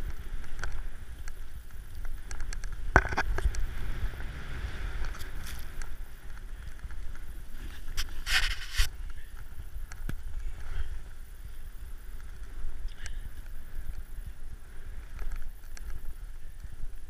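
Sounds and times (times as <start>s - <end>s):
wind rumbling on microphone: 0.0s - 17.0s
snow hissing under snowboard: 3.6s - 6.3s, 7.2s - 17.0s.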